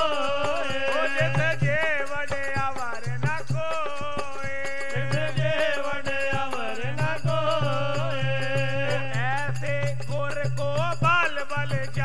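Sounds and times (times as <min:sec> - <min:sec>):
harmonium tones: 0:00.0 - 0:02.3
man singing: 0:00.0 - 0:12.0.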